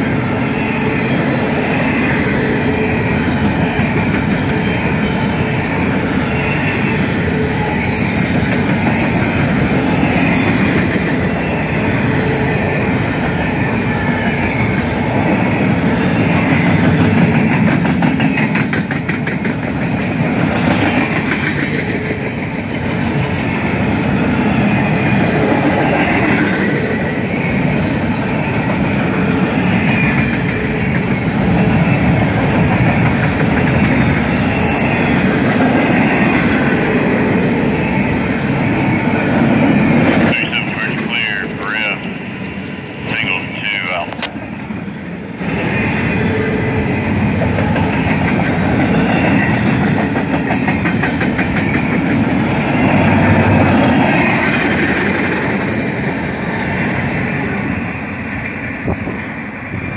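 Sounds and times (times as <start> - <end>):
freight train rumbling past: 0.0 - 59.9.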